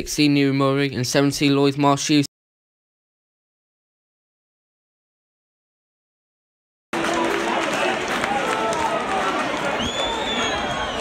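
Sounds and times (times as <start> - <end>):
crowd voices talking and calling: 7.0 - 11.0
high whistle: 9.7 - 11.0.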